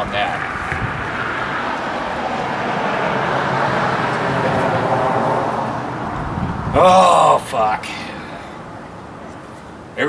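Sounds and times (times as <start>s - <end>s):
car driving past: 0.0s - 6.8s.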